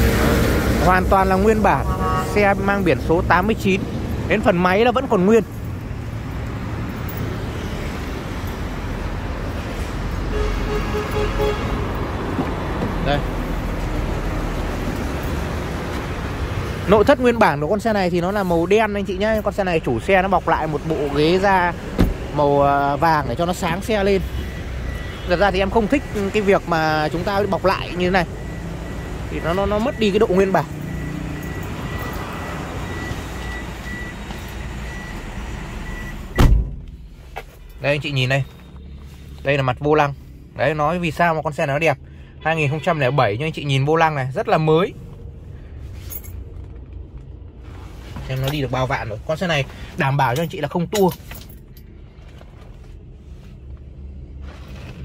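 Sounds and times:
road traffic rumble: 0.0s - 55.0s
car warning chime beeping: 23.2s - 36.5s.

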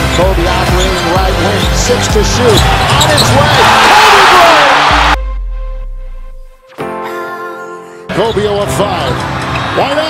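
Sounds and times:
arena crowd noise: 2.0s - 5.2s, 8.5s - 10.0s
music track: 4.9s - 9.2s.

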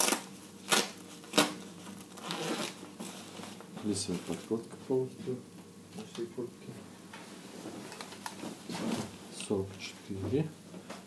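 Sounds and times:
fabric rustling: 7.2s - 9.4s.

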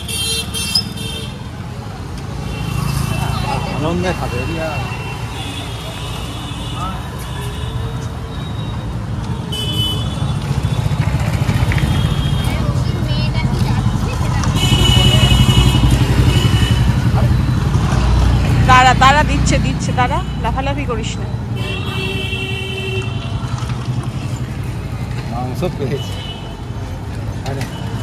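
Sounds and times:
motorcycle and scooter engines: 0.0s - 28.0s
street traffic: 0.0s - 28.0s.

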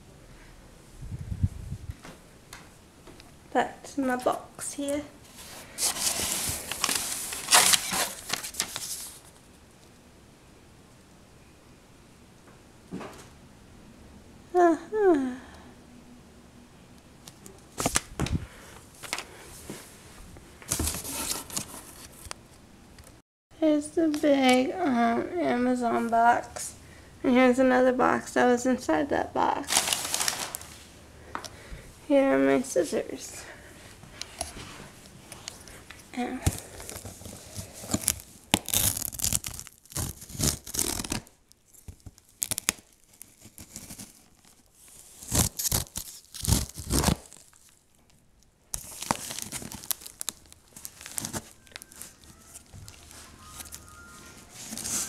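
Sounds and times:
cardboard scraping and rustling: 5.3s - 9.3s, 20.7s - 22.3s, 29.7s - 30.9s, 36.5s - 41.2s, 48.8s - 55.0s.

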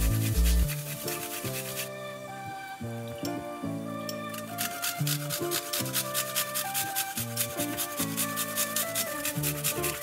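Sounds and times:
garlic grated on metal grater: 0.0s - 1.9s, 4.3s - 10.0s
background music: 0.0s - 10.0s.

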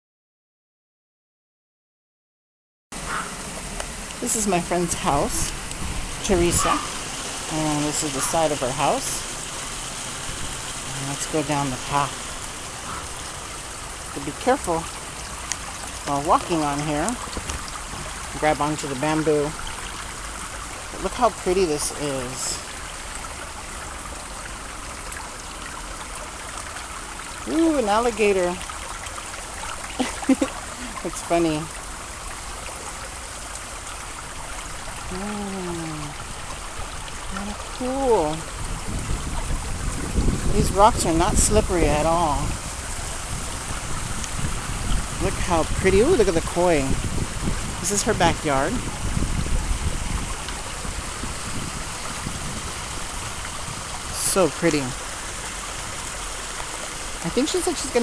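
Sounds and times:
water running over rocks: 3.0s - 58.0s.

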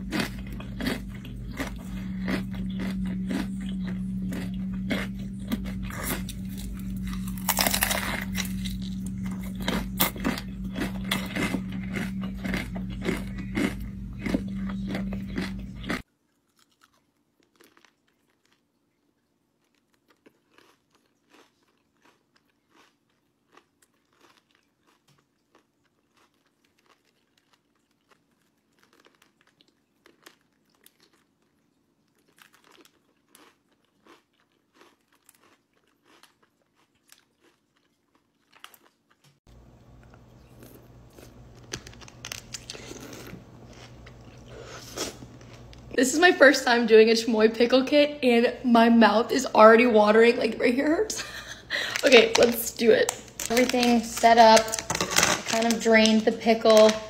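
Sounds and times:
steady low hum: 0.0s - 16.0s, 39.5s - 57.0s
crunching bites and chewing: 0.0s - 46.0s, 51.9s - 55.8s.

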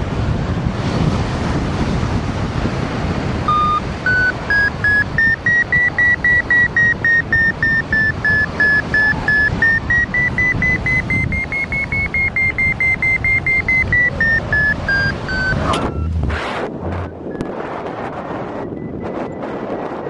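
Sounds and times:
wind noise on microphone: 0.0s - 20.0s
variometer beeping: 3.5s - 20.0s.

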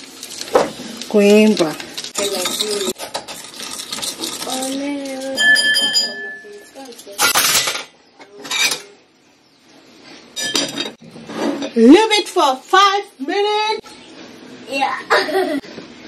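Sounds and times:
fork clinking against glass: 5.2s - 7.6s
plate clinking on bowl: 5.4s - 6.7s.

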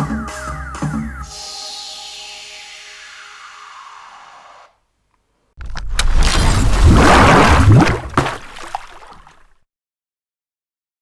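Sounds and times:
outro music with falling sweep: 0.1s - 4.7s
animated intro sound effect: 1.2s - 4.8s.

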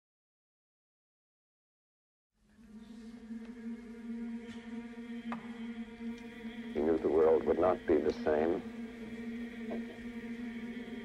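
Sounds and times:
low sustained drone: 2.4s - 11.0s.

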